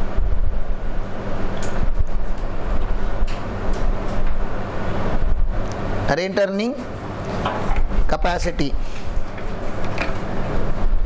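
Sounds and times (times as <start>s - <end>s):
hum of even tones: 0.0s - 8.4s
wind rumble and hiss on microphone: 0.0s - 11.0s.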